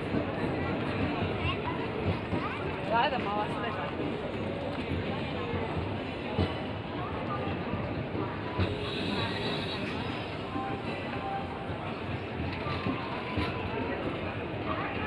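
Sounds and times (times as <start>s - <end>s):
train wheels rumbling on rails: 0.0s - 15.0s
sharp train knocks: 7.7s - 13.7s.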